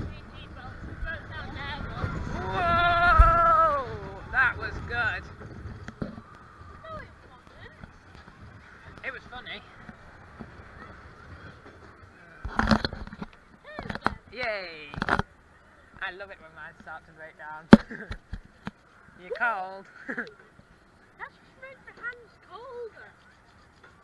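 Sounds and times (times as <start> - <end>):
loud rush of noise: 0.0 - 7.2
roller coaster running noise: 0.0 - 14.0
riders shrieking and whooping: 1.6 - 4.4.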